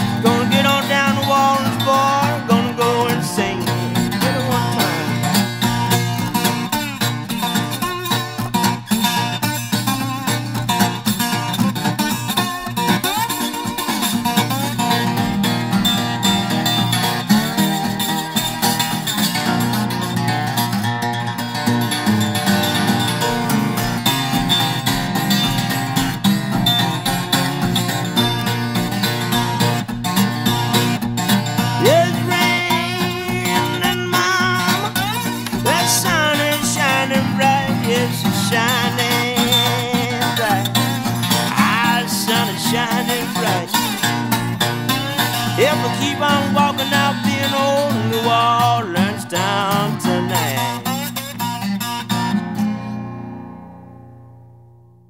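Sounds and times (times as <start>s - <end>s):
acoustic blues guitar: 0.0s - 55.0s.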